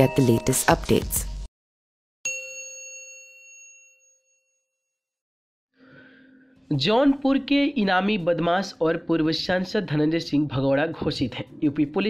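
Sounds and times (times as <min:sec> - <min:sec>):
bell-like notification ding: 0:02.3 - 0:04.6.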